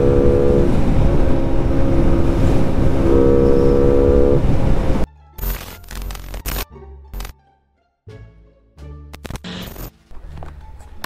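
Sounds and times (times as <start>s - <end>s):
wind noise on microphone: 0.0s - 5.1s.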